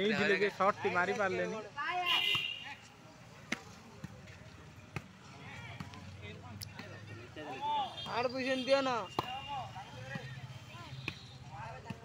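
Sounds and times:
hands smacking volleyball: 3.5 - 4.3.

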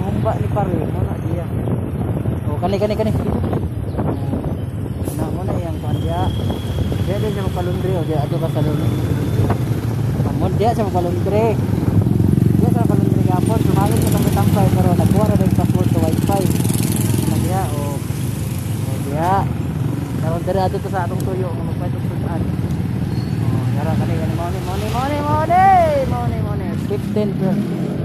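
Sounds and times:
voices talking: 0.0 - 1.7, 2.3 - 28.0.

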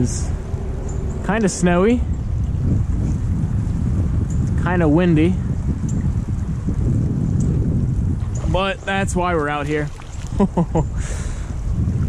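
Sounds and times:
wind buffeting microphone: 0.0 - 12.0
creek flowing: 8.2 - 11.8.

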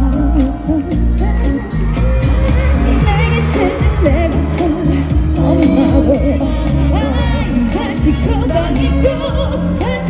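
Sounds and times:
band bass line and drums: 0.0 - 10.0
woman singing pop song: 0.0 - 10.0.

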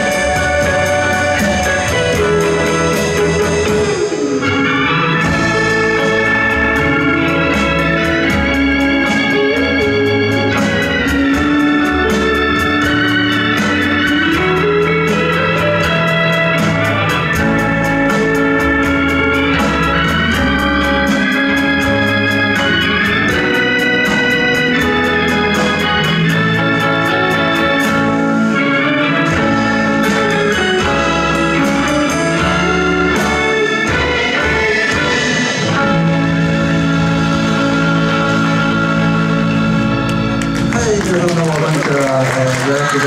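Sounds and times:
electric guitars and bass: 0.0 - 43.0
organ keyboard chords: 0.0 - 43.0.

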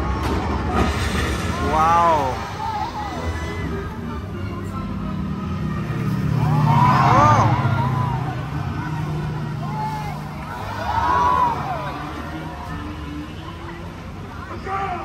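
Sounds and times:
people shouting: 1.6 - 3.7, 6.2 - 12.9.

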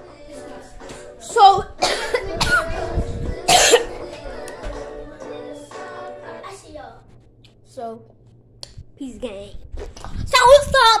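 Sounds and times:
faint background music: 0.0 - 8.2
person coughing: 1.8 - 2.7, 3.5 - 3.9.

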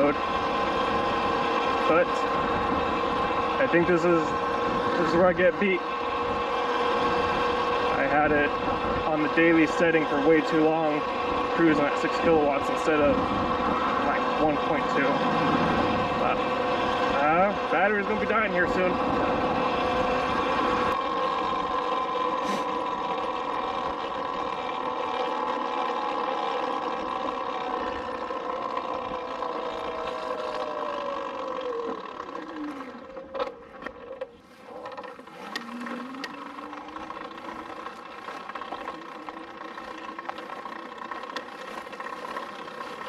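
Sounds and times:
electric motor whining: 0.0 - 43.0
wind and tyre noise: 0.0 - 43.0.

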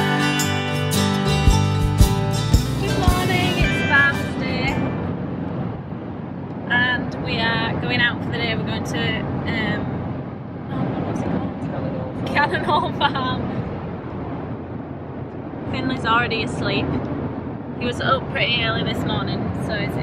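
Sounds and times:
car cabin road and engine noise: 0.0 - 20.0
woman talking: 2.8 - 4.9, 6.7 - 10.0, 10.7 - 13.6, 15.7 - 17.0, 17.8 - 20.0.

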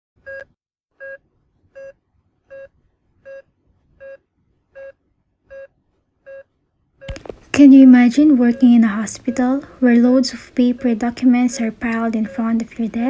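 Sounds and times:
heart monitor beeping: 0.3 - 1.2, 1.8 - 4.2, 4.8 - 5.7, 6.3 - 13.0.

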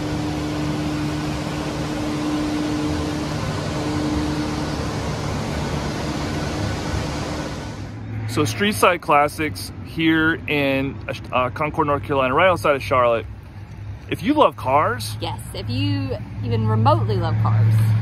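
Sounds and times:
low hum: 0.0 - 11.5.

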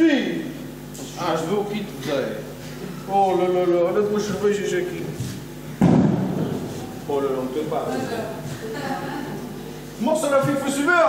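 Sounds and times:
sudden thump: 5.8 - 6.7.

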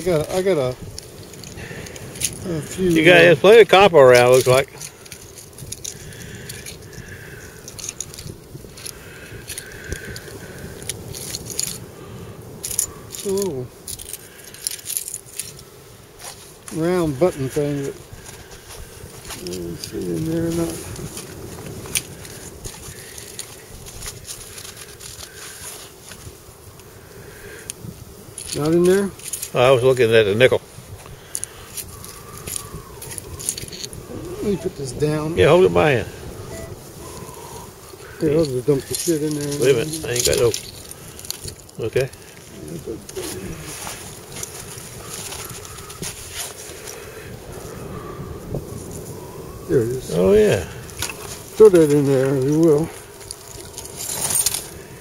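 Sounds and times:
wind rumble: 0.0 - 55.0
coins and bottle caps clinking: 4.1 - 11.8, 12.6 - 15.6, 31.3 - 34.9, 38.3 - 42.1, 51.8 - 54.7
small metal pieces clicking: 7.6 - 11.8, 12.6 - 15.6, 31.3 - 34.0, 38.9 - 41.8.

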